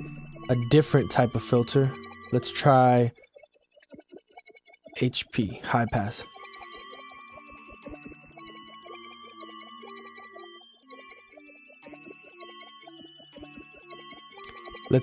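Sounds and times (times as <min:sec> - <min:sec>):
repeating synth notes: 0:00.0 - 0:15.0.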